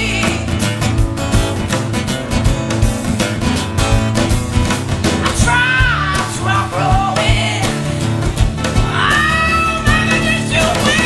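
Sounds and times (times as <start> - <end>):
person singing: 0.0 - 0.8, 5.2 - 8.1, 8.7 - 11.0
blues band playing: 0.0 - 11.0.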